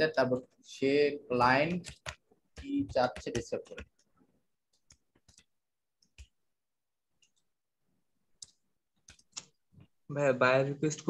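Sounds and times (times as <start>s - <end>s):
keyboard keystrokes: 1.8s - 4.0s.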